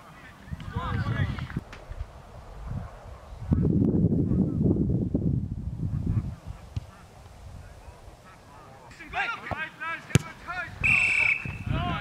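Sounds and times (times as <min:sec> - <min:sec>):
ball thud: 0:09.4 - 0:10.4.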